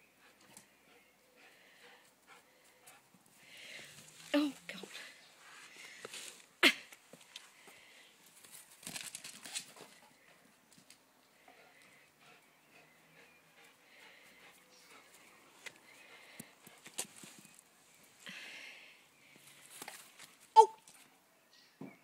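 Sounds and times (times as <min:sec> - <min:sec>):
breathy rustles: 0:01.6 - 0:10.5.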